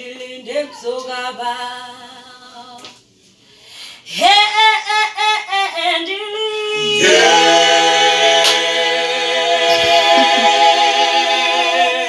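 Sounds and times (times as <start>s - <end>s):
group singing a cappella: 0.0s - 2.7s, 6.6s - 12.0s.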